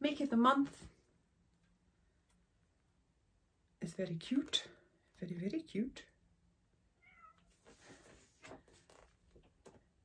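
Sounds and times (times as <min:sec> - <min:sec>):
cat meow: 0:07.0 - 0:07.6
magazine pages rustling: 0:07.7 - 0:09.5.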